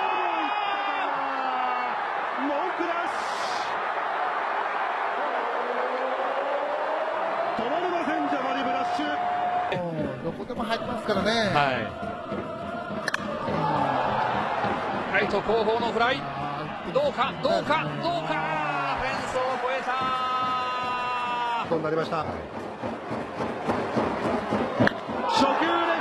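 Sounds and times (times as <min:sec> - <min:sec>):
stadium crowd noise: 0:00.0 - 0:26.0
commentators talking: 0:07.6 - 0:20.6.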